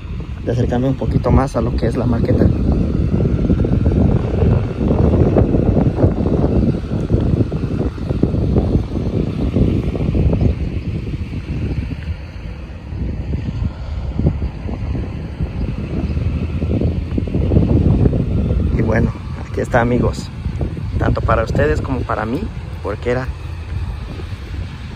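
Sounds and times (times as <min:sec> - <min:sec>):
wind buffeting microphone: 0:00.0 - 0:24.9.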